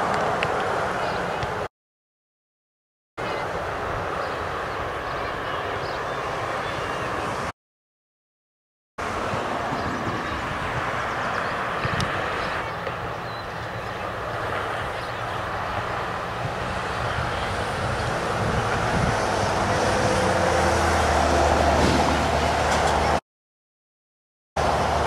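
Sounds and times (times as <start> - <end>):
outdoor background noise: 0.0 - 1.7, 3.2 - 7.5, 9.0 - 23.2, 24.6 - 25.0
vehicle engine passing: 9.0 - 23.2.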